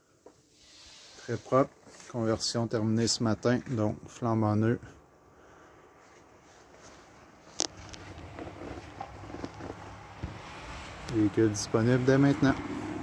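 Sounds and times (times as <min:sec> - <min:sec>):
handling rumble: 0:07.6 - 0:13.0
soft knocks: 0:08.3 - 0:10.5.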